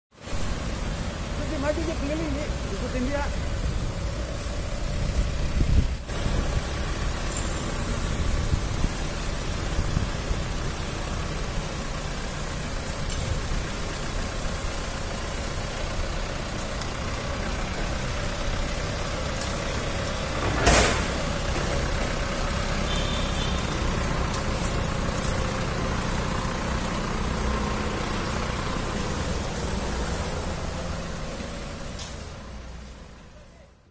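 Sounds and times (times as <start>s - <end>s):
van engine idling: 0.2s - 33.9s.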